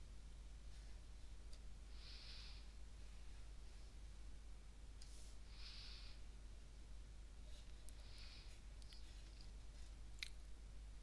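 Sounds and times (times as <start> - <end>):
soft breath: 1.8 - 4.0, 5.0 - 6.4, 7.4 - 10.0.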